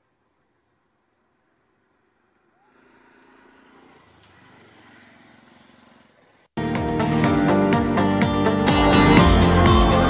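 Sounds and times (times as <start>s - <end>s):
faint vehicle engine running: 0.0s - 6.6s.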